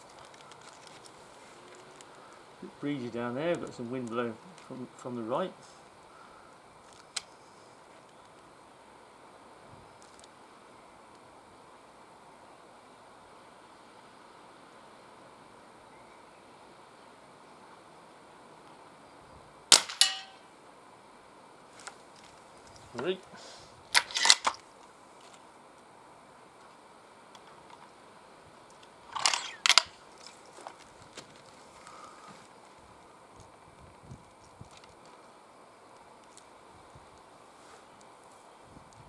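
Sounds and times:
air rifle shot: 19.7 - 20.4.

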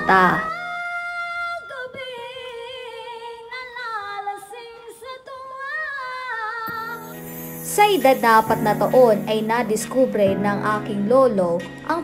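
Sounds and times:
woman singing sustained notes: 4.5 - 10.7.

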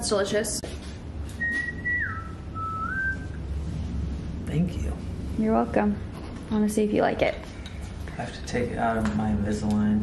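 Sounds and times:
person whistling: 1.4 - 3.4.

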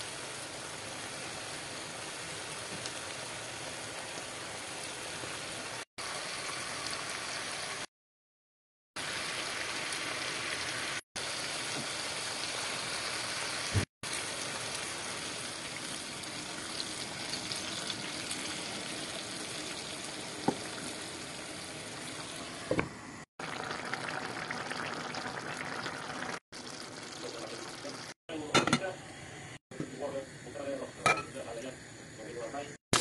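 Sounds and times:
stew bubbling in a pan: 9.0 - 22.8, 23.4 - 28.2.

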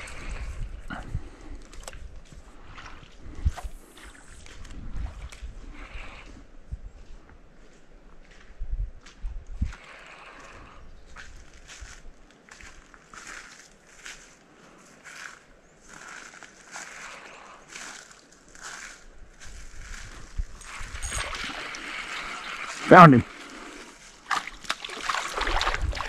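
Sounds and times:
small rustles and scrapes: 11.1 - 22.8
fish thrashing splash: 20.7 - 22.8, 24.3 - 26.0.

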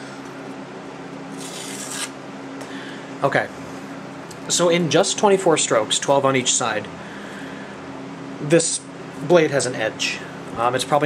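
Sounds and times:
box fan humming: 0.0 - 11.0
knife slicing paper: 1.3 - 2.2.

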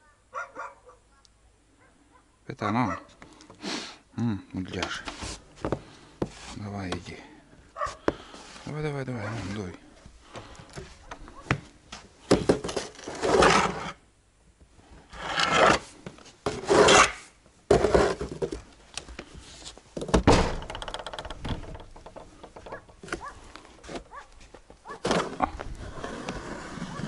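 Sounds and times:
snow shovel scraping snow: 12.9 - 14.0, 15.2 - 18.3, 25.0 - 27.0.

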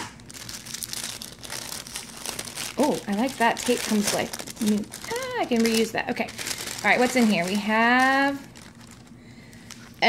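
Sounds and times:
paper packet crinkling: 0.1 - 10.0.

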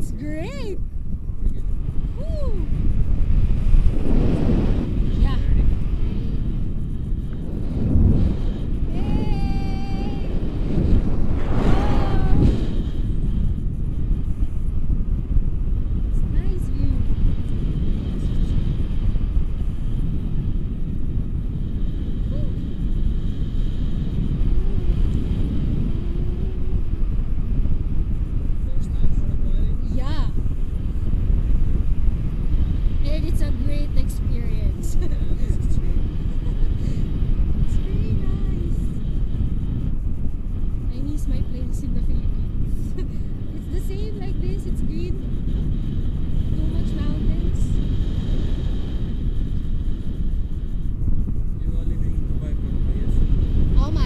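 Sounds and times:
wind rumble on microphone: 0.0 - 54.0.

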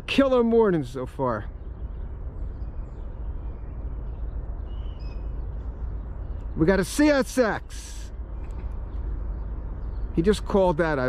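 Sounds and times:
low rumble: 0.0 - 11.0
faint bird chirps: 0.1 - 11.0.

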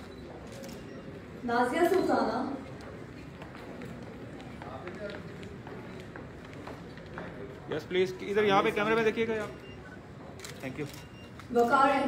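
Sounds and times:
faint indistinct voices: 0.0 - 12.0.

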